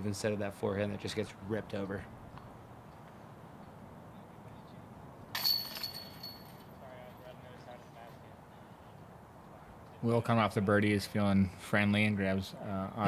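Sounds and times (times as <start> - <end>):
disc hitting metal basket: 5.4 - 6.6
chains jingling: 5.4 - 6.8.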